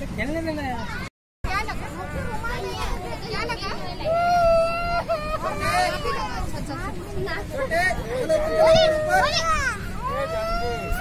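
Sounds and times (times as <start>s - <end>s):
children calling and chattering: 0.5s - 11.0s.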